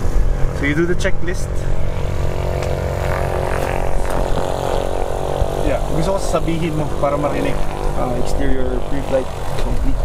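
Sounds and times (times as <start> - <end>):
steady engine drone: 0.0 - 10.0.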